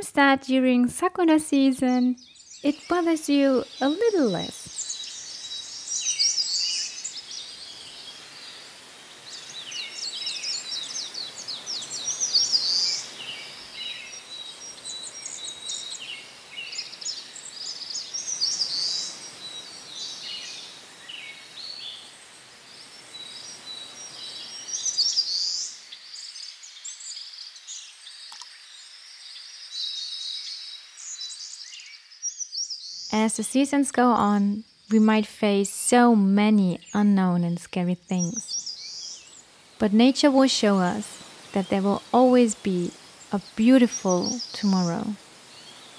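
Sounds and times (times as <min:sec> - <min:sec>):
wind rustling in trees: 0:00.0 - 0:45.9
birds chirping and singing: 0:00.5 - 0:08.6, 0:09.3 - 0:22.0, 0:29.7 - 0:45.9.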